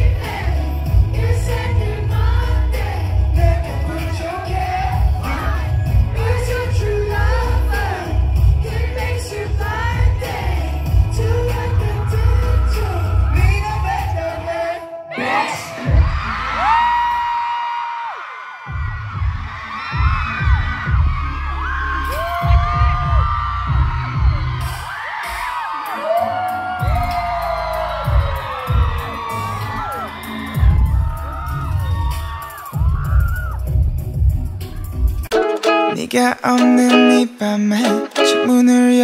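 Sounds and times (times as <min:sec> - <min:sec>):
heavy drum and bass hits: 0:00.0 - 0:12.0, 0:15.9 - 0:16.3, 0:18.7 - 0:21.3, 0:22.1 - 0:25.5, 0:30.5 - 0:35.4
live band music: 0:00.0 - 0:16.3, 0:24.6 - 0:38.8
crowd screaming and whooping: 0:00.0 - 0:35.8.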